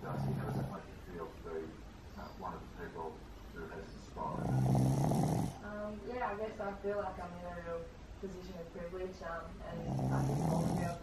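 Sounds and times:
dog snoring: 0.0s - 0.9s, 4.2s - 5.6s, 9.7s - 11.0s.

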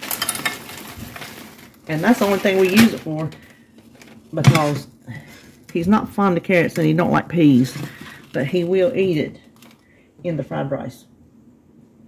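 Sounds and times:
frozen vegetables rattling: 0.0s - 9.9s.

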